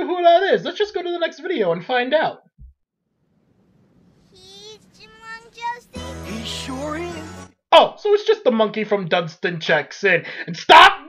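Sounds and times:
child singing: 4.3s - 7.4s.

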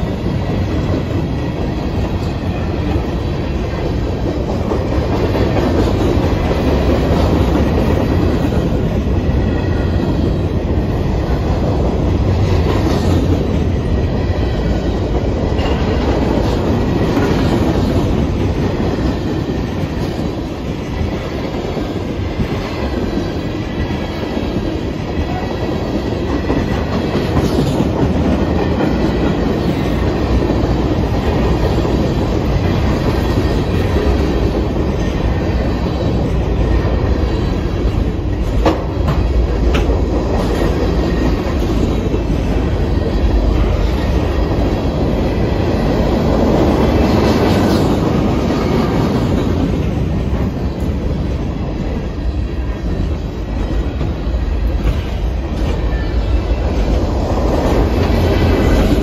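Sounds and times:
train wheels rolling on rail: 0.0s - 59.0s.

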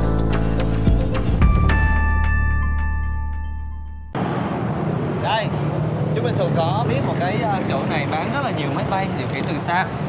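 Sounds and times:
motorbikes and cars passing: 4.2s - 10.0s.

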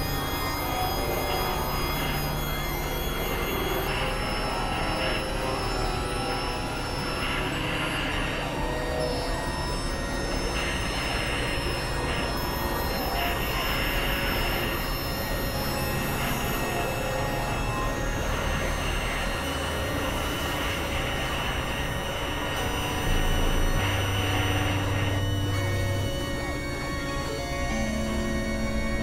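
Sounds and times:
electronic noise music: 0.0s - 29.0s.

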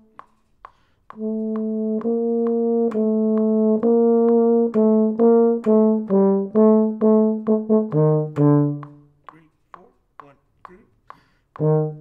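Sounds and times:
metronome clicks: 0.0s - 12.0s
euphonium melody: 1.2s - 9.0s.

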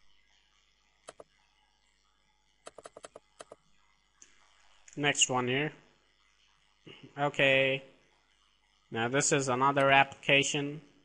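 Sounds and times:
keyboard and mouse clicking: 2.7s - 3.6s.

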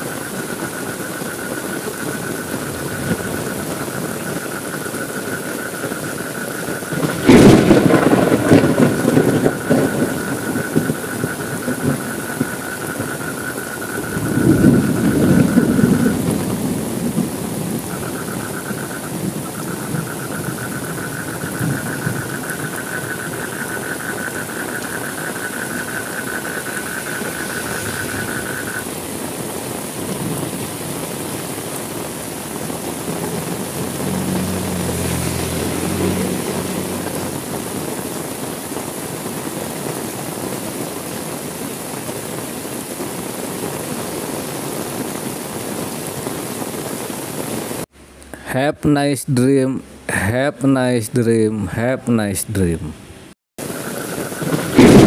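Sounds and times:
steady rain: 0.0s - 48.4s, 52.6s - 55.0s
thunder clap and rumble: 1.8s - 5.1s, 5.7s - 40.8s, 53.6s - 55.0s.

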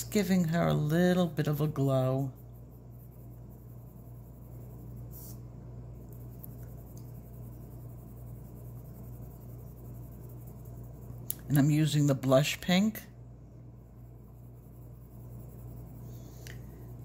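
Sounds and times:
pencil scratching on paper: 0.0s - 5.5s, 6.2s - 13.0s, 13.8s - 17.0s
steady low hum: 0.0s - 17.0s.

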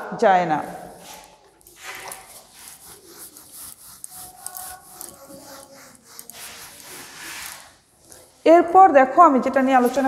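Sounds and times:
eraser wiping whiteboard: 0.6s - 8.4s.

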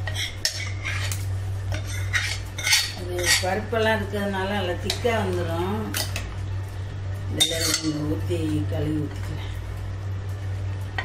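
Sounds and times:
ladle clinking on metal pots: 7.4s - 8.0s.

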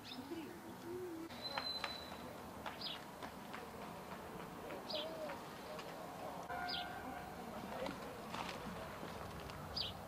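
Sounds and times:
bird calling: 0.0s - 3.0s.

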